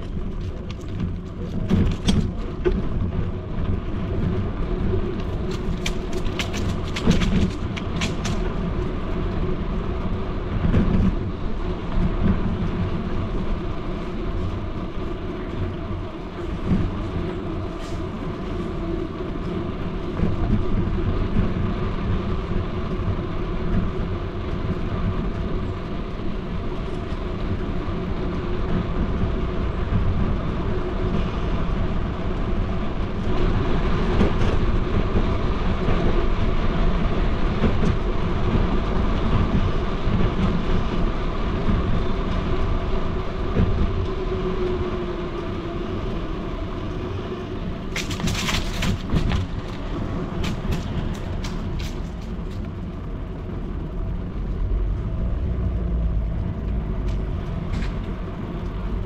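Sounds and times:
constant hum: 0:00.0 - 0:59.0
rumble of street travel: 0:00.0 - 0:59.0
sharp clicks and rattles: 0:05.2 - 0:08.8, 0:47.9 - 0:59.0.

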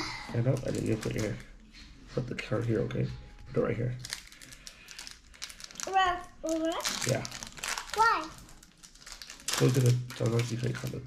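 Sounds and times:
foil pack crinkling: 0:00.4 - 0:01.5, 0:04.0 - 0:11.0.

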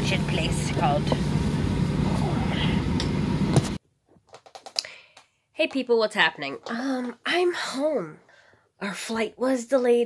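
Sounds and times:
airplane cabin drone: 0:00.0 - 0:03.8.

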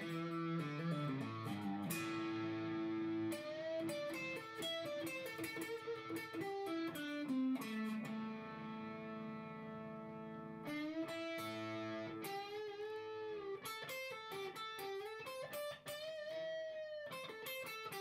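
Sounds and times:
overdriven electric guitar: 0:00.0 - 0:18.0.

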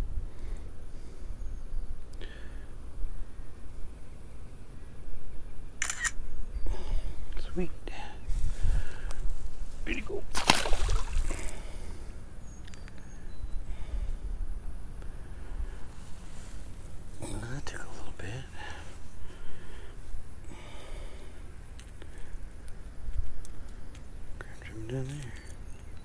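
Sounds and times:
wind rumble on microphone: 0:08.2 - 0:09.8
splash in water: 0:10.3 - 0:11.4.

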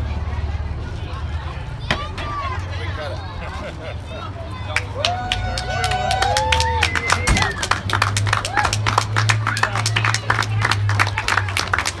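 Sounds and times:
crowd clapping and cheering: 0:04.6 - 0:12.0
whoops: 0:05.0 - 0:09.9.

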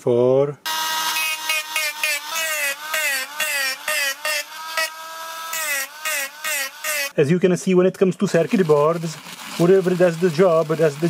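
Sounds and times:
rotary tool motor whine: 0:00.7 - 0:07.2
gritty grinding: 0:01.4 - 0:07.2, 0:08.3 - 0:11.0.

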